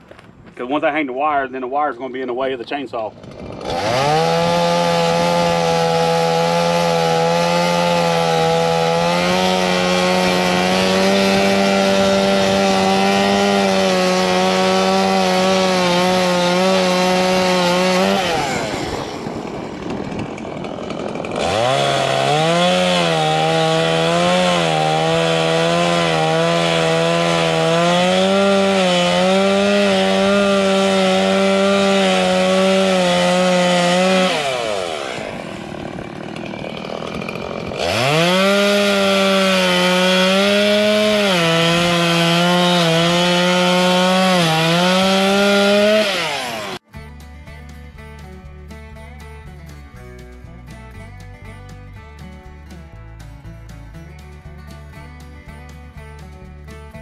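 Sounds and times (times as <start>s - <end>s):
chainsaw cutting wood: 2.7s - 57.0s.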